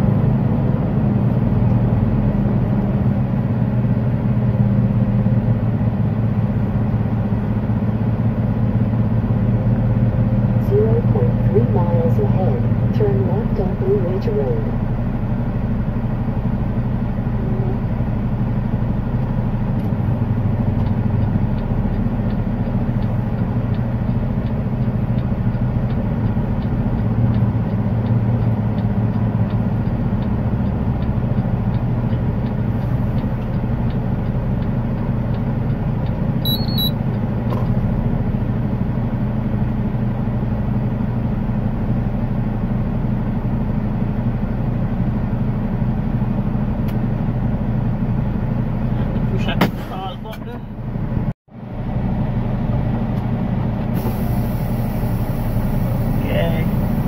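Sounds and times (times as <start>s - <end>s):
diesel engine running: 0.0s - 57.0s
short high beep: 36.4s - 37.0s.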